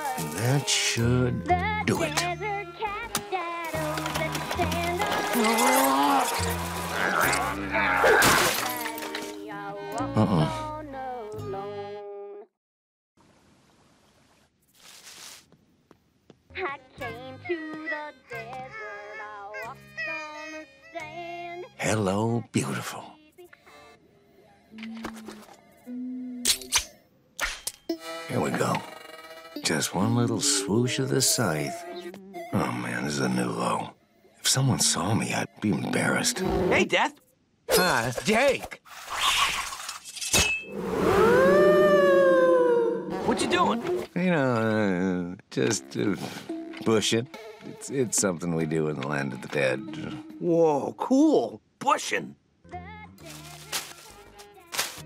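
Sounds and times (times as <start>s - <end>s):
long ghostly wail: 40.7s - 44.1s.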